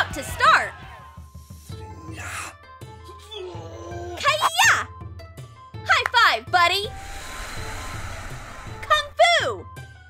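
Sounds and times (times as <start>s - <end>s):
rushing noise: 6.9s - 9.1s.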